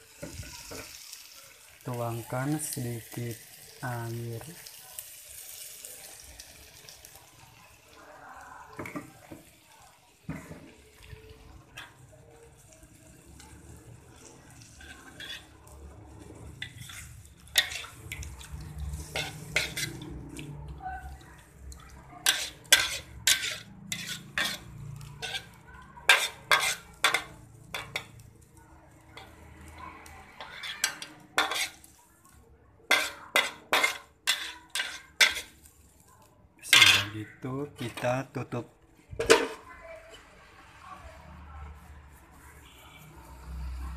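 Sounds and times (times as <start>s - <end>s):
utensil scraping metal pan: 14.6s - 15.6s, 16.3s - 20.2s, 22.2s - 28.2s, 30.4s - 31.9s, 32.9s - 35.5s, 36.6s - 37.2s, 39.2s - 39.6s.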